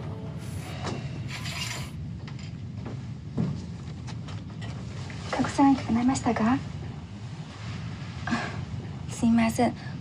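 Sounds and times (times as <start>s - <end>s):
curtain hooks scraping along rail: 1.3s - 2.0s.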